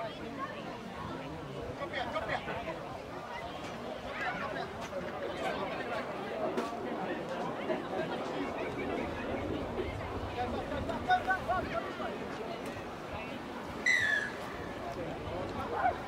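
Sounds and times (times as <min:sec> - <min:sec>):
spectator chatter: 0:00.0 - 0:16.0.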